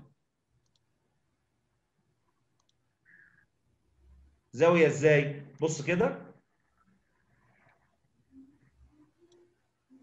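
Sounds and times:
faint mouse clicks: 0.6s - 0.9s, 2.5s - 3.4s.

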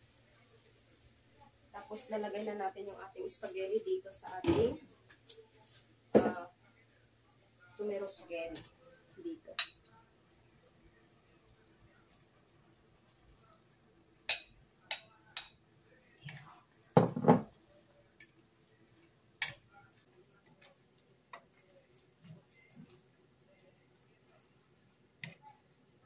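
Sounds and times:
metal tongs clicking on pot: 9.6s - 9.8s, 14.3s - 15.6s, 19.4s - 19.6s.

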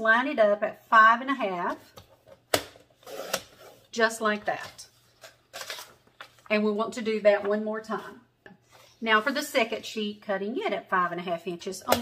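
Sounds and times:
paper rustling: 4.5s - 7.6s.

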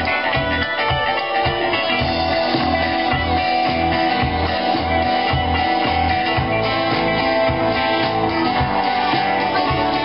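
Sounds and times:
drums: 0.0s - 10.0s
electric bass notes: 0.0s - 10.0s
strummed acoustic guitar: 0.0s - 10.0s.

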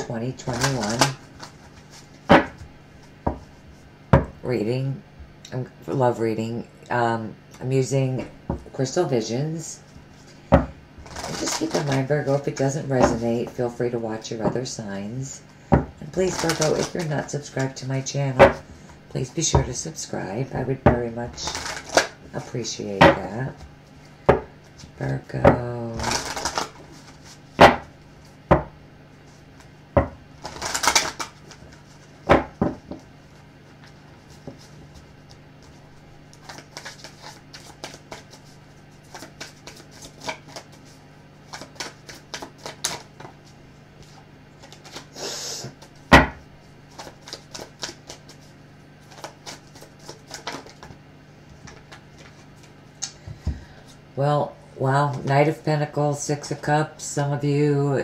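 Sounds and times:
cards shuffled by hand: 0.4s - 3.6s, 11.0s - 13.2s, 16.0s - 17.8s, 21.3s - 22.5s, 26.0s - 27.7s, 30.4s - 33.1s, 33.7s - 46.1s, 46.9s - 52.8s
cards riffling: 0.5s - 2.3s, 11.0s - 12.4s, 16.2s - 17.1s, 21.4s - 22.2s, 26.0s - 27.4s, 30.4s - 32.1s, 34.3s - 46.1s, 46.9s - 51.0s.

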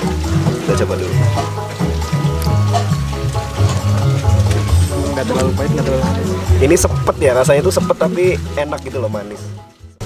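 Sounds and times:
music with prominent bass line: 0.0s - 10.0s.

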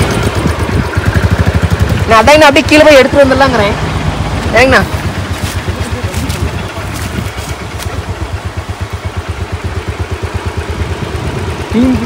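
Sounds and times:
motorcycle engine running low: 0.0s - 12.0s.

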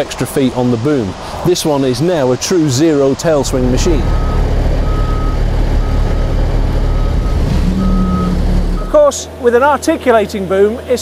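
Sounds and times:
diesel boom lift running: 3.4s - 9.5s
motion alarm beeping: 4.1s - 9.0s.

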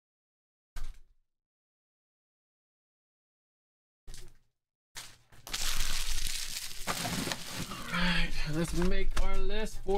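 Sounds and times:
foil wrappers crinkling: 5.0s - 8.9s.

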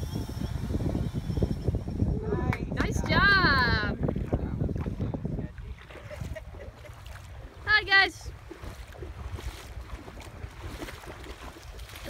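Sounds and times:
shallow water washing: 0.0s - 12.0s
wind buffeting microphone: 0.0s - 12.0s.

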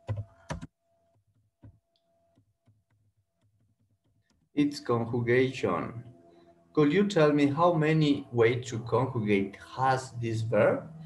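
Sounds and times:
computer keyboard keystrokes: 0.0s - 0.7s.

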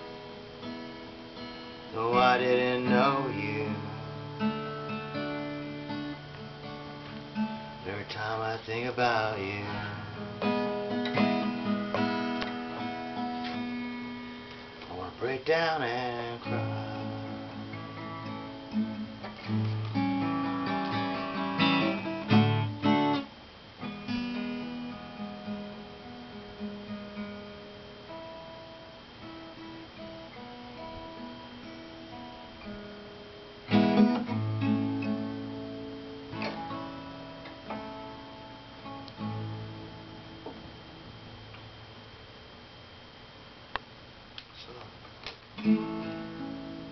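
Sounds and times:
acoustic guitar strummed chords: 0.0s - 43.4s, 45.2s - 46.9s
acoustic guitar picked notes: 0.0s - 43.7s, 45.0s - 46.9s.

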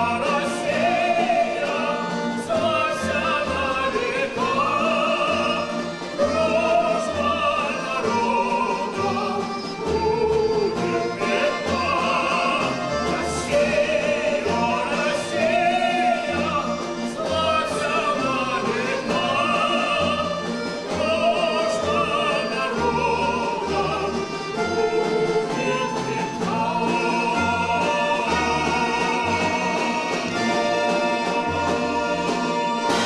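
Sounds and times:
male and female voices singing: 0.0s - 33.0s
plucked folk string instruments: 0.0s - 33.0s.

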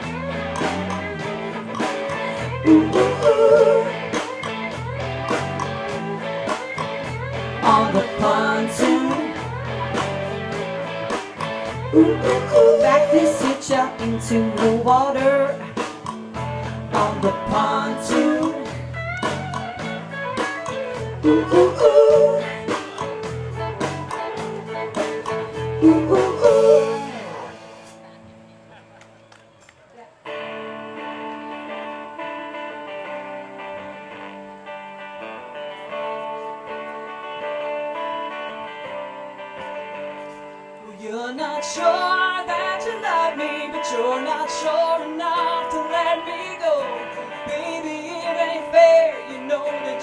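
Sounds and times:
live band playing: 0.0s - 28.8s, 30.2s - 50.0s
person singing: 1.8s - 4.3s, 7.6s - 10.0s, 11.9s - 15.8s, 16.9s - 18.9s, 21.2s - 27.6s, 40.8s - 50.0s.

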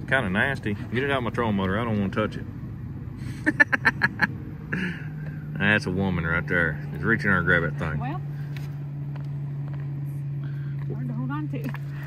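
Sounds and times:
electric trolling motor humming: 0.0s - 12.0s.

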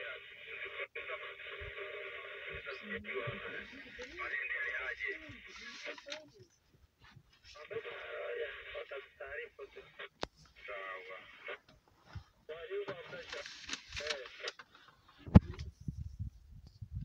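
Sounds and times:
person speaking through radio speaker: 0.0s - 6.6s, 7.5s - 11.7s, 12.5s - 14.6s.

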